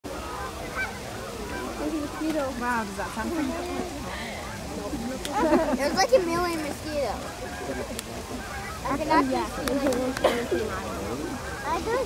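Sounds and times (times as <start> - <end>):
geese honking: 0.1 - 12.0.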